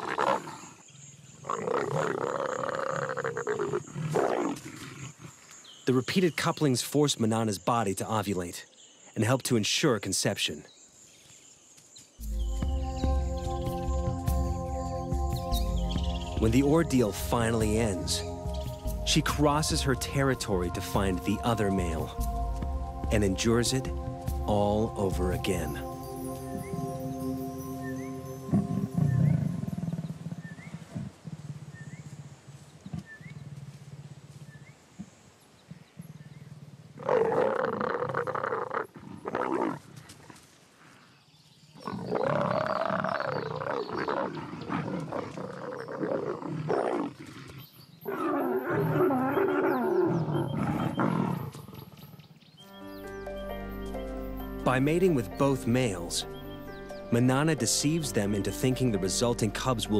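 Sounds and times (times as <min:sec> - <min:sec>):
leopards calling: 0:12.2 - 0:31.2, 0:41.8 - 0:59.9.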